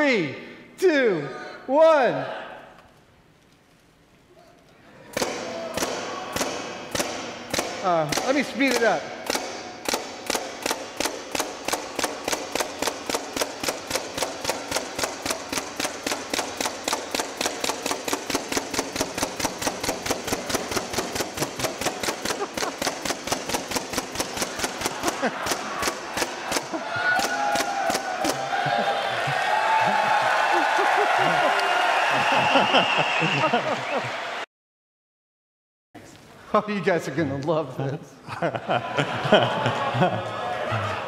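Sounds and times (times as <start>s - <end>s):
paintball gun popping: 5.2s - 28.4s
audience cheering and applauding: 24.9s - 34.5s, 38.8s - 41.0s.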